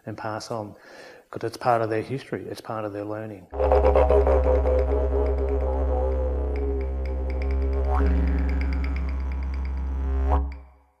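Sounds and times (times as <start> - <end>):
didgeridoo drone: 3.6 - 10.7
regular tapping: 3.6 - 10.7.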